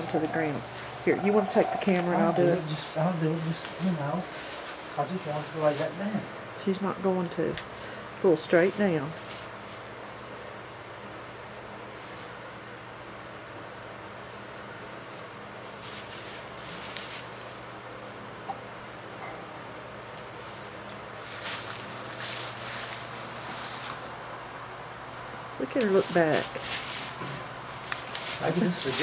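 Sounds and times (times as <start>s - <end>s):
straw bedding rustling: 0.0s - 6.6s, 7.5s - 10.4s, 13.6s - 17.8s, 19.8s - 24.6s, 25.6s - 29.0s
steady low hum: 0.0s - 29.0s.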